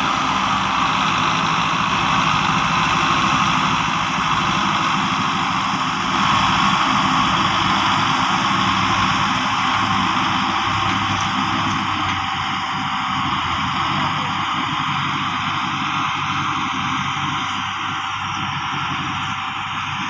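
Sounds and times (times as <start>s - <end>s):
diesel tractors running under load: 0.0s - 20.0s.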